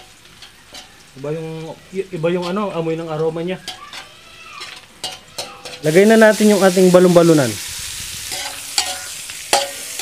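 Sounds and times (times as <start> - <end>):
food sizzling in butter: 0.0 - 10.0.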